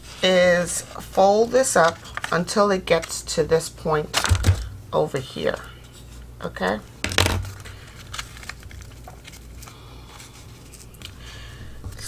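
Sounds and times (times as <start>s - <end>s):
paper rustling: 0.0s - 3.1s, 7.1s - 12.0s.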